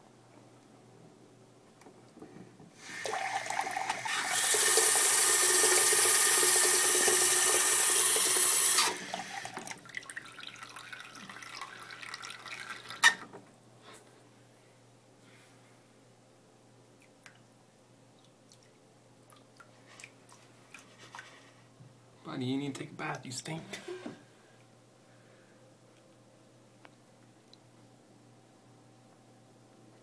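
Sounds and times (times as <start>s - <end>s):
water trickling and dripping: 9.8s - 13.0s.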